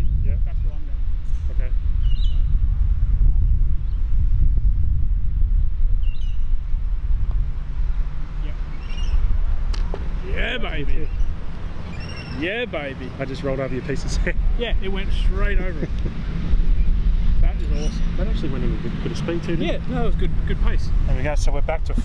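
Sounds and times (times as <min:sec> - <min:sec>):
wind rumble on microphone: 0:00.0 - 0:22.0
faint bird chirps: 0:08.7 - 0:09.3, 0:11.0 - 0:12.4
sharp click: 0:09.7 - 0:10.1.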